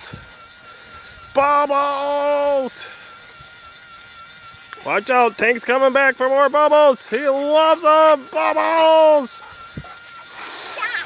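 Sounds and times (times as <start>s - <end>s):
bubble machine whining: 0.0s - 11.0s.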